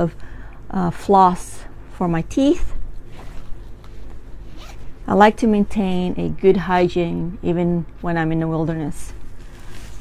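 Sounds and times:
small zipper being pulled: 0:04.4 - 0:04.9.

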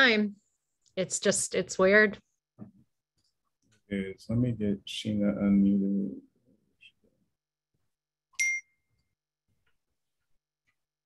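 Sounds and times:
short bright ding: 0:08.4 - 0:08.8.

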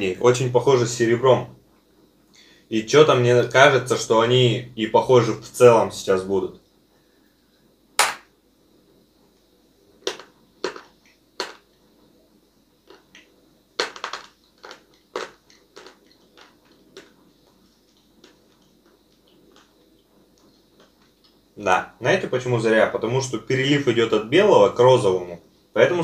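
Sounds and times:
chewing crunches: 0:10.0 - 0:11.8, 0:12.8 - 0:21.4.

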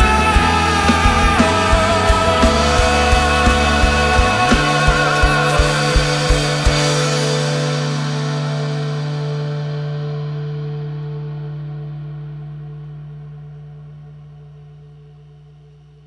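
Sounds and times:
guitars and bass chord ringing: 0:00.0 - 0:16.0.

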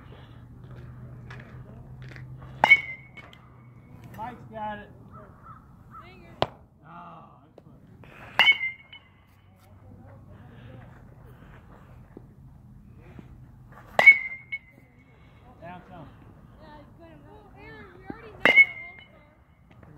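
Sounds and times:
metal bat pinging on ball: 0:02.6 - 0:03.4, 0:08.4 - 0:09.2, 0:14.0 - 0:14.8, 0:18.4 - 0:19.2.

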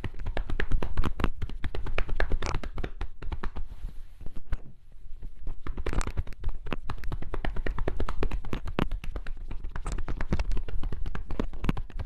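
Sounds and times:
hands tapping on jeans: 0:00.0 - 0:04.6, 0:05.4 - 0:12.0.

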